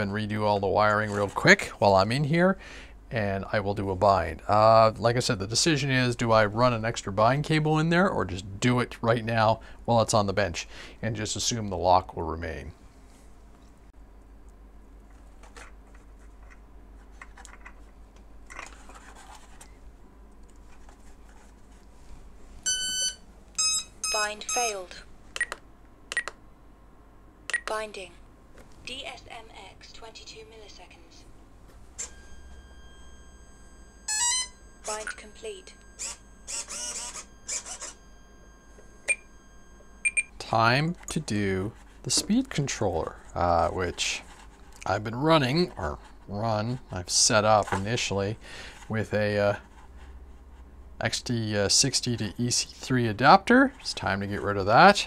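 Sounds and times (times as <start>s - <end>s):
soft handling rustles: 14.9s - 22.7s
faint high electronic whine: 30.8s - 48.4s
sharp electronic beep: 39.0s - 39.3s, 40.0s - 40.4s.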